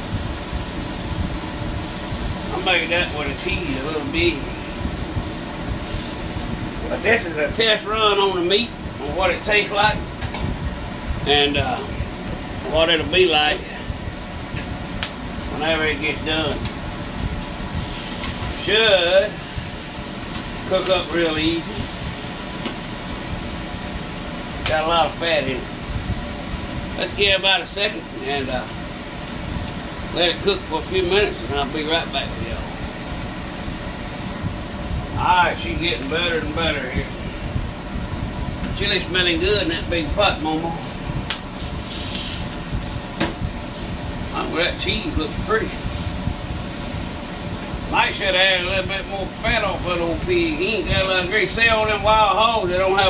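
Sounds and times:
sausage patties sizzling in skillet: 0:17.0 - 0:22.6, 0:41.5 - 0:43.0.

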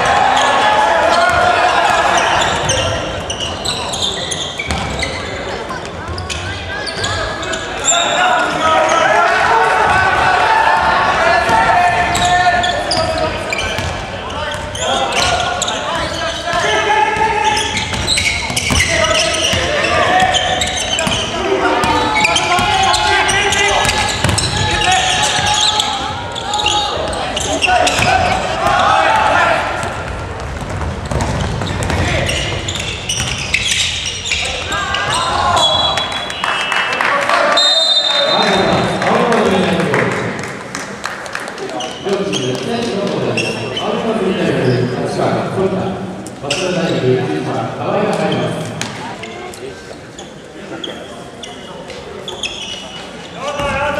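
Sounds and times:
players shouting: 0:00.0 - 0:04.4, 0:07.0 - 0:30.4, 0:31.7 - 0:40.0
basketball bouncing on court: 0:04.6 - 0:05.2, 0:11.4 - 0:15.4, 0:17.5 - 0:19.7, 0:20.3 - 0:26.1, 0:27.4 - 0:28.8, 0:29.8 - 0:35.2.

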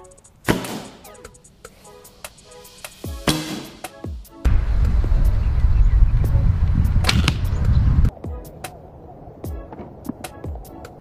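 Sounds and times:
bow string snap and arrow release: 0:00.5 - 0:01.1, 0:07.0 - 0:07.6
low wind rumble on microphone: 0:04.5 - 0:11.0.

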